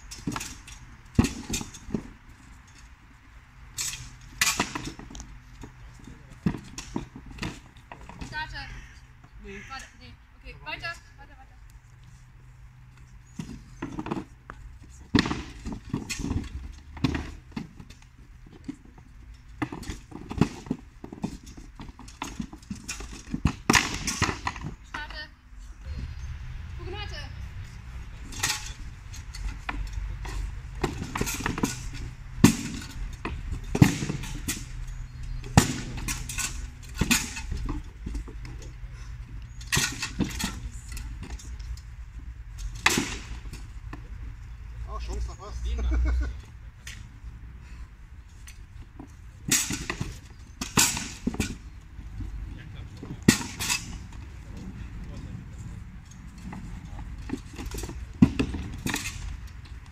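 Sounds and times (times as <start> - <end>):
wooden spears clacking: 0.0 - 3.0, 3.6 - 10.0, 12.9 - 25.2, 27.6 - 44.5, 48.3 - 59.9.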